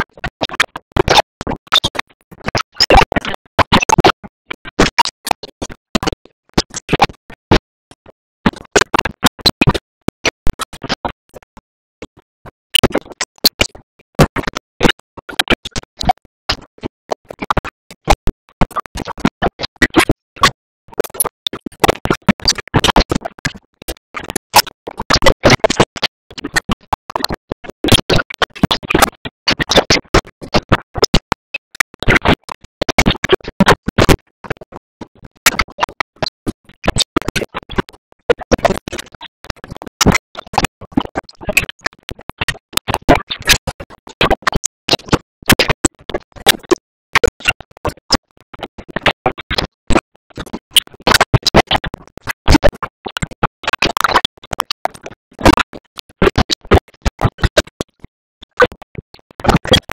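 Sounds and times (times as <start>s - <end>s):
dense irregular crackling and clicking: 0.0s - 59.9s.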